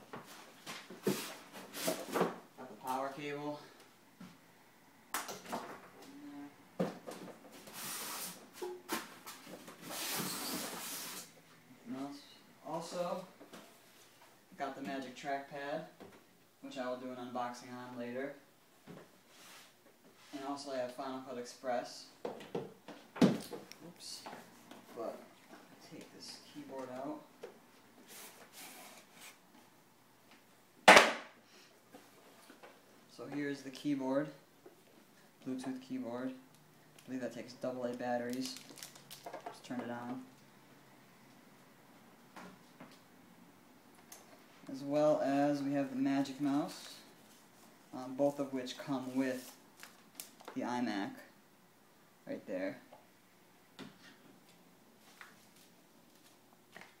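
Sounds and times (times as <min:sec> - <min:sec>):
packaging crinkling: 0:38.2 - 0:39.5.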